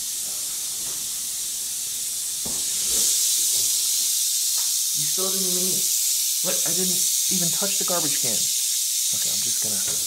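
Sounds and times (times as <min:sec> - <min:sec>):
rattlesnake rattling: 0:00.0 - 0:10.0.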